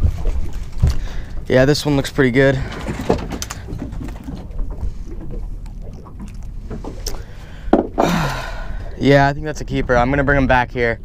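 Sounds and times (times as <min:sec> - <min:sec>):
water against boat hull: 0:00.0 - 0:10.8.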